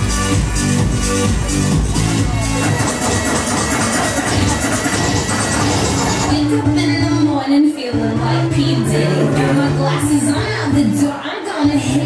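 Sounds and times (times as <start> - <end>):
loud club music over speakers: 0.0 - 12.0.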